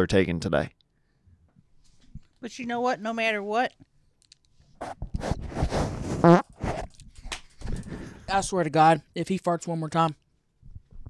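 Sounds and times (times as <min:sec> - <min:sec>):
raspy fart: 0:04.8 - 0:06.9
short fart sputters: 0:04.8 - 0:07.0.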